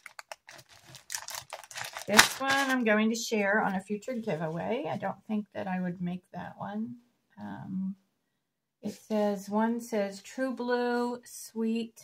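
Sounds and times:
plastic sleeve crinkling: 0.0 - 2.9.

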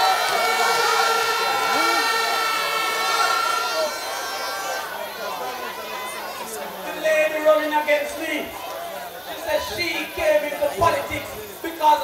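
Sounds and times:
man speaking over public address: 5.2 - 12.0.

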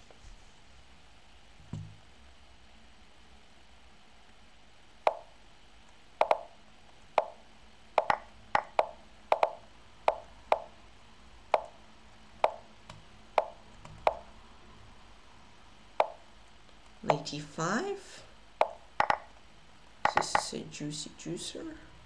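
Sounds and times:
wooden plop chess move sounds: 8.0 - 10.7, 18.6 - 19.3, 20.1 - 20.5.

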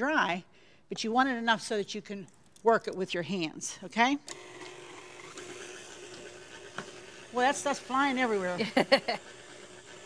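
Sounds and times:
stand mixer motor humming: 4.3 - 10.0.

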